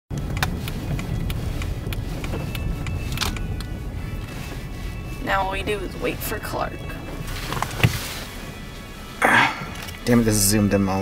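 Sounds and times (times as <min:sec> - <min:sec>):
car road and engine rumble: 0:00.1 - 0:11.0.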